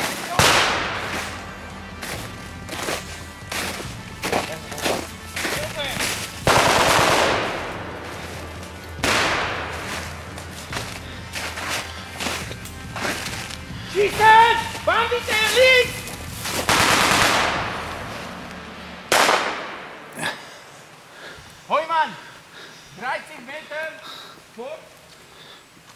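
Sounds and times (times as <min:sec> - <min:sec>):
small gunshot cracks: 0:00.4 - 0:01.2
rifle shots echoing: 0:00.4 - 0:01.4, 0:06.4 - 0:08.3, 0:09.0 - 0:10.3, 0:16.6 - 0:18.1, 0:19.0 - 0:20.2
loud shouting: 0:13.9 - 0:16.1.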